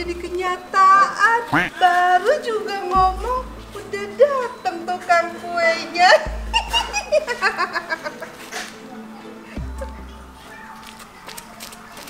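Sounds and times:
background music: 0:00.0 - 0:12.0
women laughing: 0:06.0 - 0:08.6.

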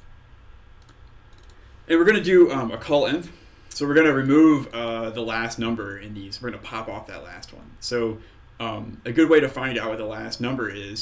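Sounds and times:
computer mouse clicks: 0:00.8 - 0:01.6.

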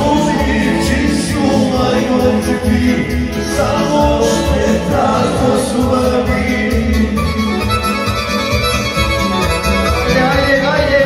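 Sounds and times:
accordion playing held notes: 0:07.1 - 0:11.0.

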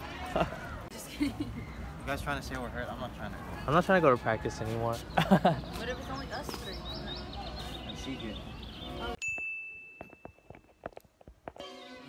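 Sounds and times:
high bell-like ding: 0:09.2 - 0:10.4.

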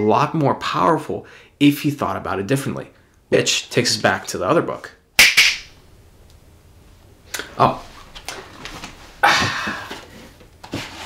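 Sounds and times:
finger snaps: 0:05.2 - 0:05.7.

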